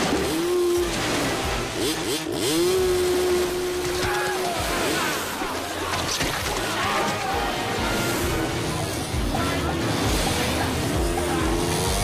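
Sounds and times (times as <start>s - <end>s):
dirt bike engines revving: 0.0s - 12.0s.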